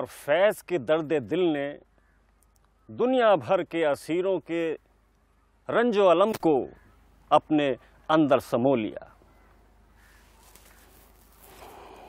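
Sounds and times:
faint outdoor ambience: 0.0 - 12.0
distant bird calls: 0.7 - 12.0.

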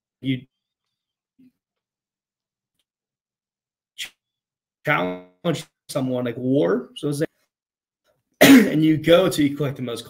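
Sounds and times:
man speaking: 0.2 - 0.6, 4.9 - 7.4, 8.5 - 10.0.

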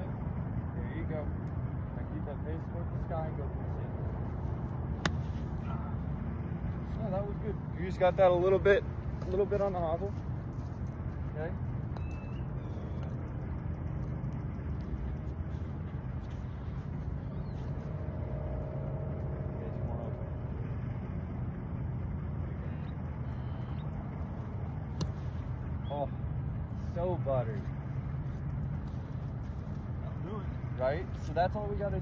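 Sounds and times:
low outdoor rumble: 0.0 - 32.0
golf club striking sand: 5.0 - 5.5, 25.0 - 25.4.

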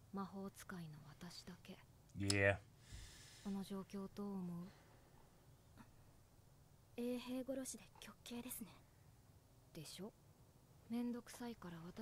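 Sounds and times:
person speaking softly: 2.2 - 2.6.

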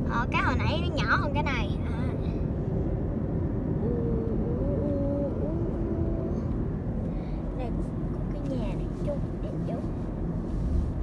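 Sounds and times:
road and engine rumble: 0.0 - 11.0.

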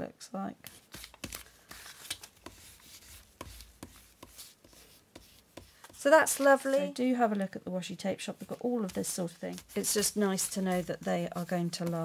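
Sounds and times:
paper rubbing and rustling: 0.7 - 7.0, 8.4 - 12.0.

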